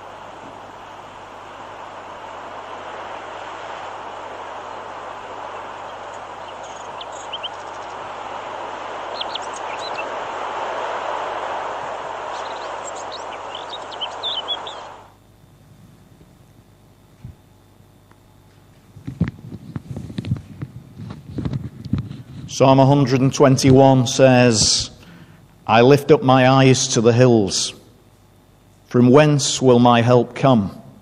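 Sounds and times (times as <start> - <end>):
steady rushing noise: 0.0 - 15.3.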